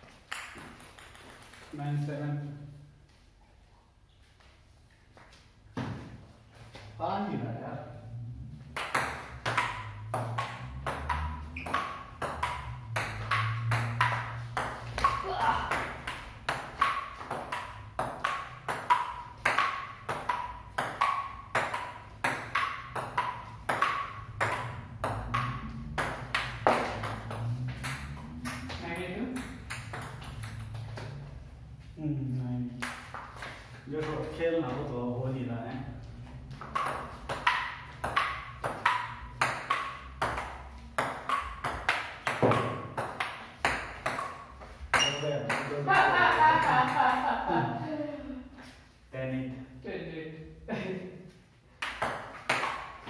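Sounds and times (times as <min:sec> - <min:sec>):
table tennis ball clicking: 0:08.8 - 0:15.2, 0:16.0 - 0:28.7.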